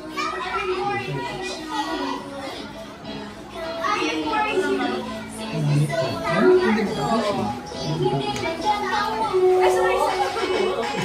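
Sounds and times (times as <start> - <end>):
children talking and playing: 0.0 - 11.0
music: 0.0 - 11.0.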